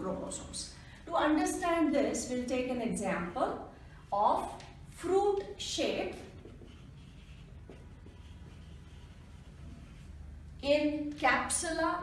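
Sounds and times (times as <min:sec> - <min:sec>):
marker scratching on whiteboard: 0:05.4 - 0:10.6.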